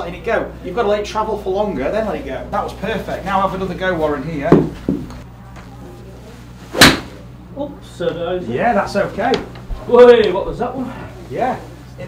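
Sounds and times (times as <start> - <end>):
steady low hum: 0.0 - 12.0
golf club striking ball: 6.8 - 7.2.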